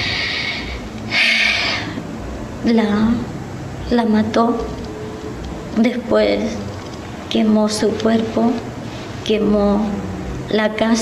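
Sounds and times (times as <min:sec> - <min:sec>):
woman breathing: 0:00.0 - 0:02.1.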